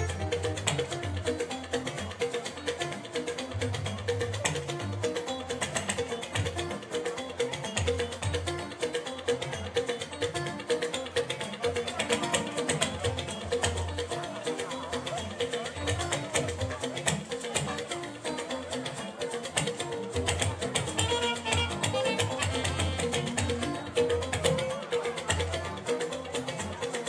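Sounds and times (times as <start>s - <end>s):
live band with drums and guitar: 0.0s - 27.0s.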